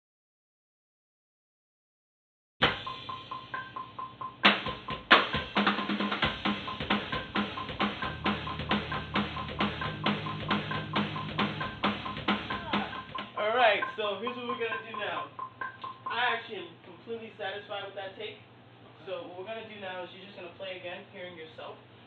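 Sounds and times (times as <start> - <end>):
electronic drum kit: 2.6 - 16.6.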